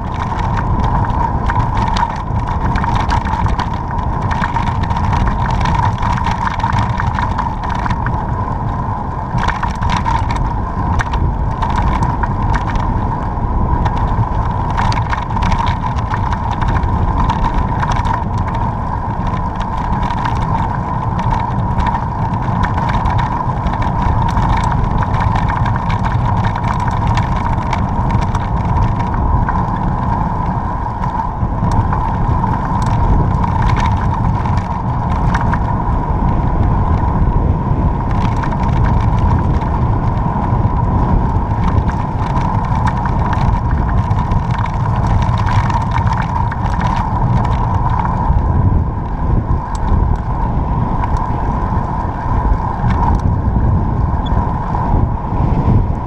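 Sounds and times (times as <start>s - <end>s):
small ticks and rattles: 0.0s - 37.3s, 38.0s - 48.6s, 49.6s - 53.4s
mid-pitched hum: 0.0s - 56.0s
tyre noise on asphalt: 0.0s - 56.0s
wind rumble on microphone: 0.0s - 56.0s.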